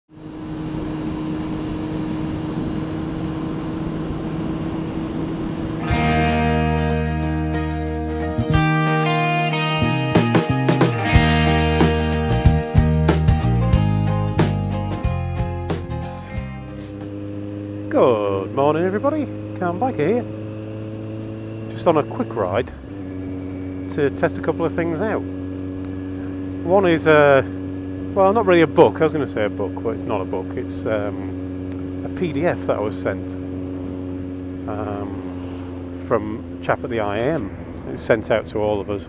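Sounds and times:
wind and road noise: 0.1 - 12.0, 16.7 - 39.0
motorcycle engine running: 0.1 - 39.0
guitar music: 4.6 - 17.4.

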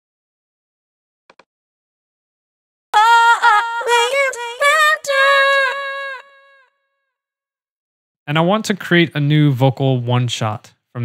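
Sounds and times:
synthesized high voice singing: 3.0 - 6.6.

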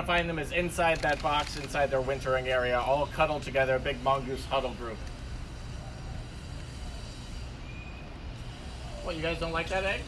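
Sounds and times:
faint high peep: 7.6 - 8.3.

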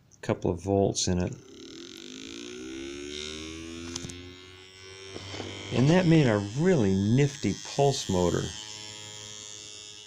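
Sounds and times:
motor humming rising in pitch: 1.1 - 10.0.

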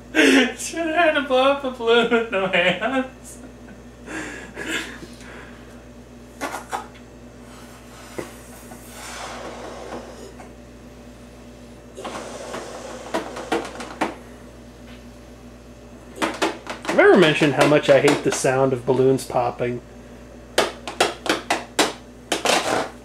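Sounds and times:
breath puffs into balloon: 7.4 - 10.4, 12.0 - 13.9.

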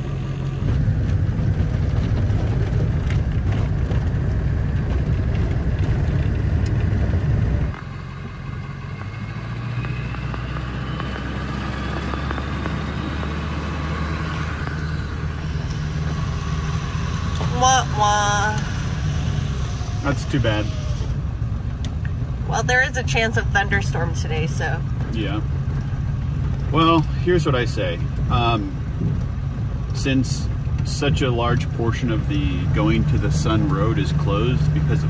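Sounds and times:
engine and road rumble: 0.0 - 35.0.

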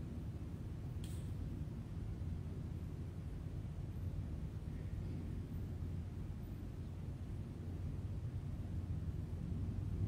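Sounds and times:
faint click: 1.0 - 1.3.

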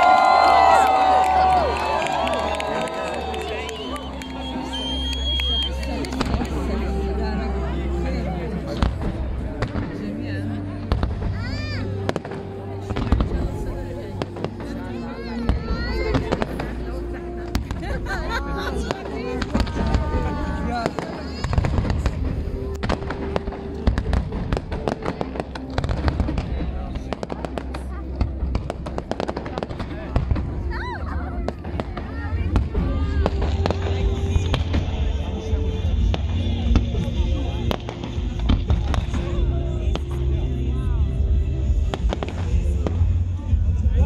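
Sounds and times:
fireworks bangs and crackles: 0.0 - 7.4, 8.0 - 44.0.

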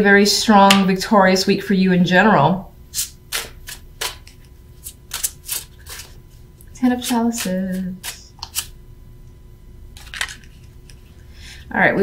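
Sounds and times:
cards being shuffled: 3.0 - 6.2, 10.0 - 11.1.

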